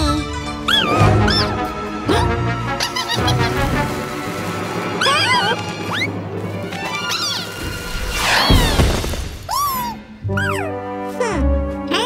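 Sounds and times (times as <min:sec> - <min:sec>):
squeaky character vocalizations: 0:00.0 - 0:03.7, 0:05.0 - 0:06.2, 0:06.8 - 0:08.9, 0:09.5 - 0:12.0
cartoon background music: 0:00.0 - 0:12.0
firework fuse hissing: 0:07.2 - 0:09.6.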